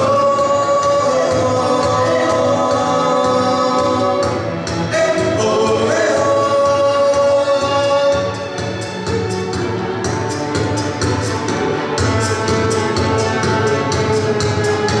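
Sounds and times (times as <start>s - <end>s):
a cappella group singing: 0.0s - 8.8s
string ensemble: 0.0s - 15.0s
steady low beat: 1.2s - 15.0s.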